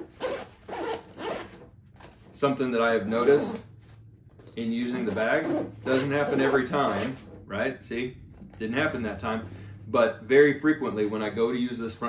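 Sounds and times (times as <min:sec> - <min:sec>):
bag zipper being pulled: 0:00.0 - 0:02.1, 0:03.0 - 0:03.6, 0:04.9 - 0:07.4.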